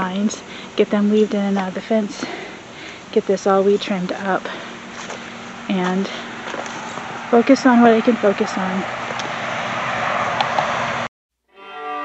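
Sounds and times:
outdoor background noise: 0:00.0 - 0:11.1
slow music with bowed strings: 0:11.5 - 0:12.0.

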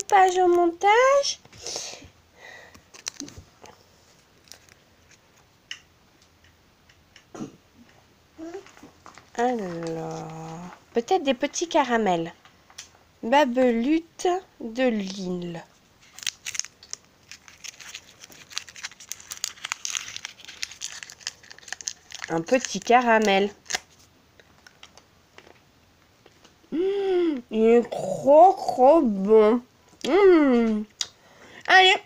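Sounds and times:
fingers ticking on paper wrapper: 0:16.1 - 0:25.0.

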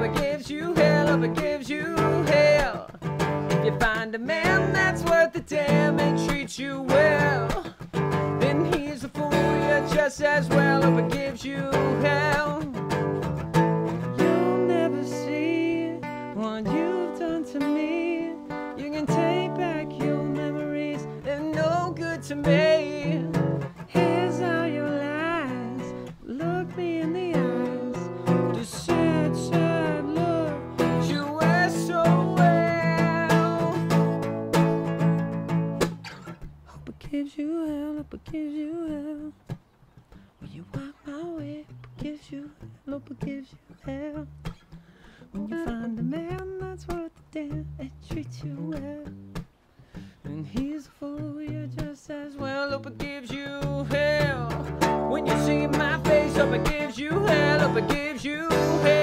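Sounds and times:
man singing: 0:00.0 - 0:35.1, 0:36.7 - 0:39.4, 0:40.4 - 0:49.3, 0:50.0 - 0:59.0
acoustic guitar strumming: 0:00.0 - 0:36.8, 0:38.9 - 0:59.0.

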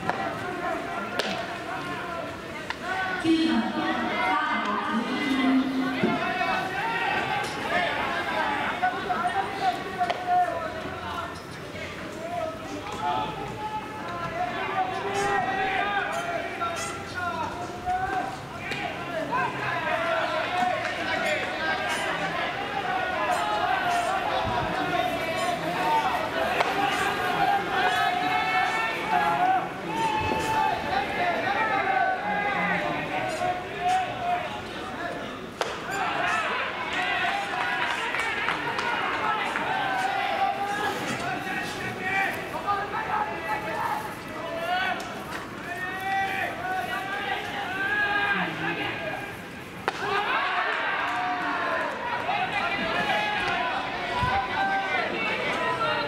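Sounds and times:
people talking: 0:00.0 - 0:56.0
voices calling out: 0:00.0 - 0:56.0.

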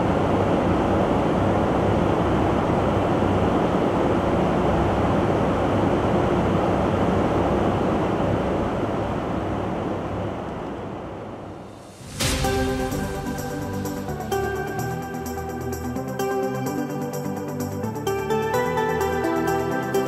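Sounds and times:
airflow and jet engine rush: 0:00.0 - 0:20.0.

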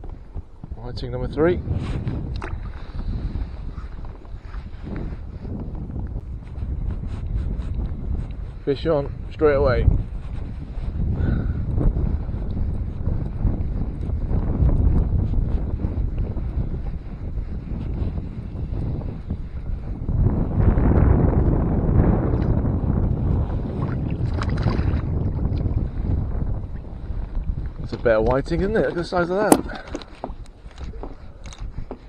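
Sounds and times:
wind buffeting microphone: 0:00.0 - 0:32.0.

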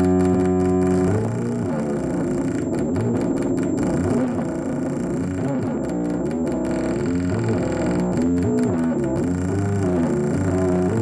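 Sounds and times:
distorted synthesizer drone: 0:00.0 - 0:11.0
stuttering chopped high tones: 0:00.0 - 0:11.0.

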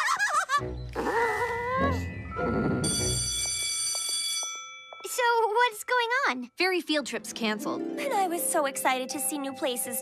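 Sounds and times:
bell-like ringing tone: 0:02.8 - 0:05.1.

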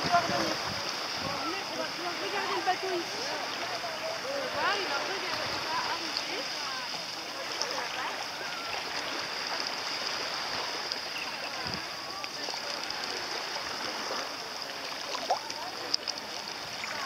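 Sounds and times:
faint distant voices: 0:00.0 - 0:17.0
small waves washing ashore: 0:00.0 - 0:17.0.

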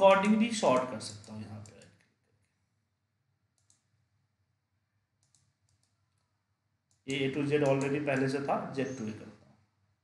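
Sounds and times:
faint computer mouse clicks: 0:00.7 - 0:02.6, 0:03.5 - 0:03.9, 0:05.2 - 0:06.3.

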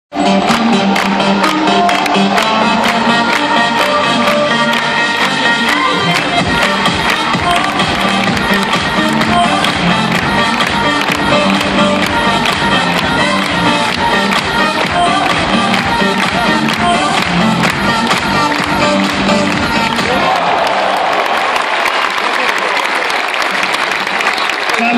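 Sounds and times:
pop music over loudspeakers: 0:00.1 - 0:20.6
crowd cheering and applause: 0:00.2 - 0:24.9
crowd clapping along: 0:00.2 - 0:24.9.

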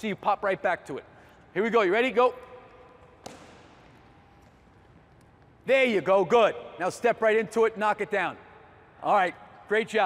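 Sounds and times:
basketball bouncing on wooden floor: 0:03.0 - 0:04.0.

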